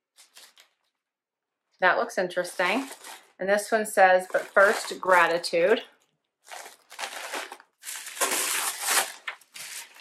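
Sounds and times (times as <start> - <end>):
wrapping crinkling and rustling: 0.0 - 1.1, 2.3 - 10.0.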